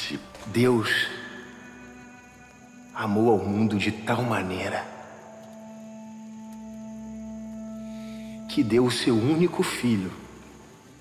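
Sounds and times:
soft sustained background music: 0.0s - 11.0s.

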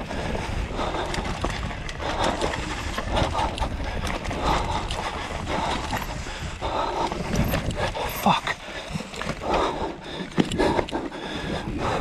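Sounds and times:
bike tyres over dirt and roots: 0.0s - 12.0s
rider breathing hard: 0.0s - 12.0s
wind rumble on microphone: 0.0s - 12.0s
bike knocks and rattles: 7.0s - 11.0s.

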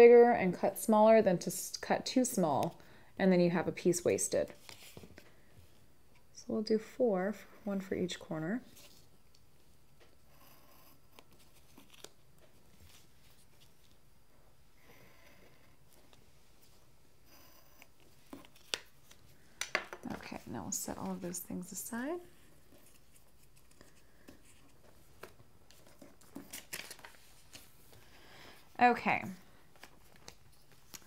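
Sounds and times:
paper rustling: 11.2s - 14.0s, 22.6s - 28.1s, 29.7s - 31.0s.

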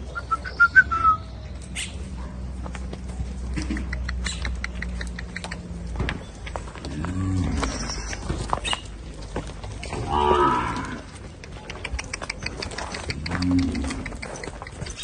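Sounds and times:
cows mooing: 6.8s - 8.0s, 9.9s - 11.2s, 13.0s - 14.2s.

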